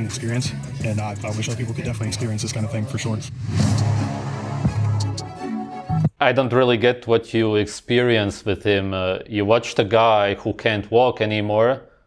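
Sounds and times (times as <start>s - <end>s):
music with low bass line: 0.0s - 6.1s
brief rushing noise: 3.2s - 5.2s.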